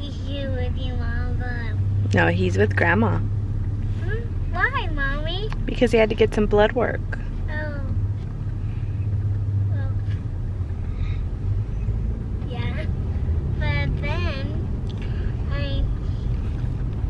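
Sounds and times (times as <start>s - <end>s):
car cabin rumble: 0.0s - 17.0s.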